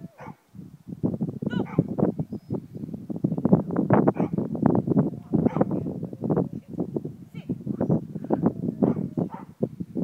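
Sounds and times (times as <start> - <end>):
dog barking: 0.2 - 0.4, 1.6 - 1.9, 4.1 - 4.4, 5.4 - 5.7, 8.8 - 9.5.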